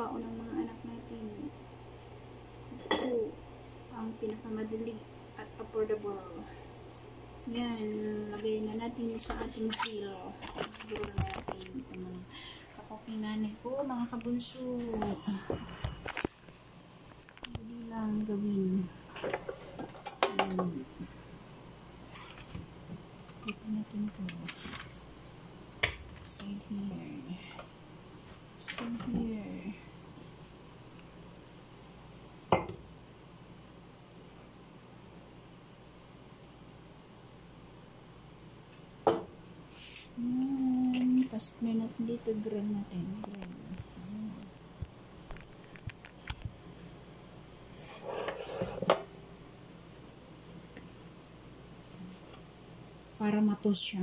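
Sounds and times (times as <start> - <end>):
rustling scrape: 22.0 - 22.5, 39.7 - 40.2, 47.7 - 48.9
small clicks and taps: 43.2 - 46.6.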